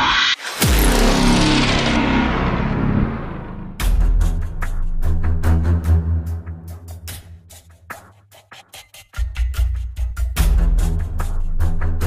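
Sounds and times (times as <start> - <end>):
deep impact boom and rumble: 0.6 - 4.7.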